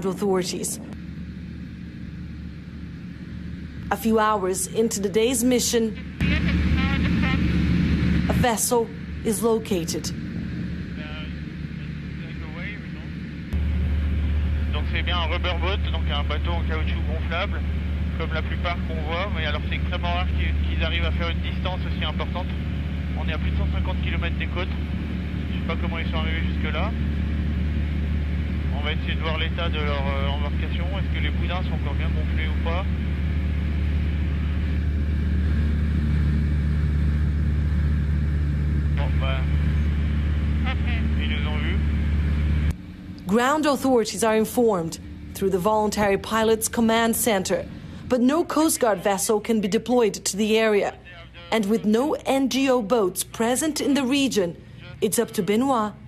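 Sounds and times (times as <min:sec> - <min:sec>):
light aircraft engine droning: 0:00.0 - 0:56.0.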